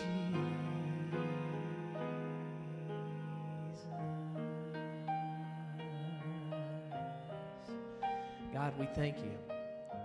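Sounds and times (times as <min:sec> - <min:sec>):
soft piano and keyboard music: 0:00.0 - 0:10.0.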